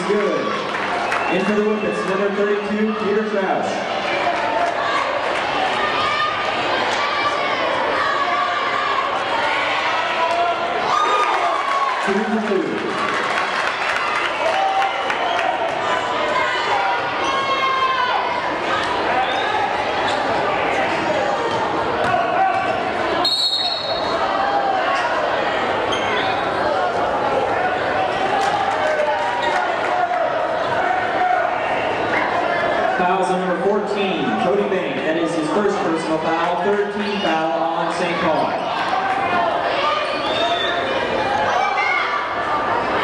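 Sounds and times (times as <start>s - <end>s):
crowd chatter: 0.0s - 43.0s
referee whistle blast: 23.2s - 24.2s.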